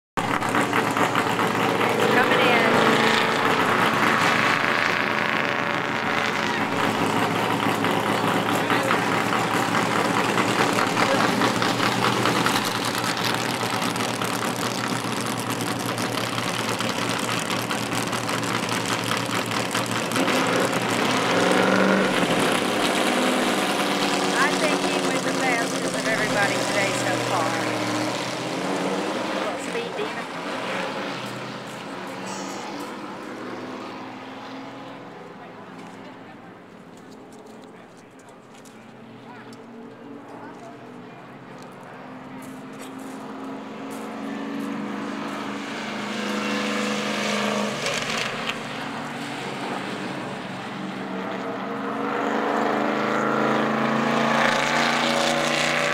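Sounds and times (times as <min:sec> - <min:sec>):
race car engines running loudly: 0:00.2 - 0:55.9.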